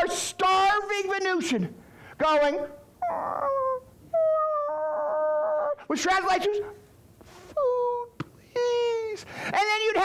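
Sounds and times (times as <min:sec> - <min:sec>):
man wailing: 0:03.0 - 0:05.8.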